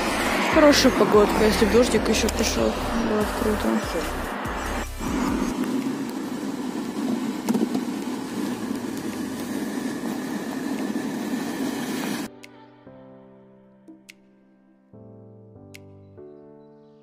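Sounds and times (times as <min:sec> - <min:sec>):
road and engine noise in car: 0:00.0 - 0:12.3.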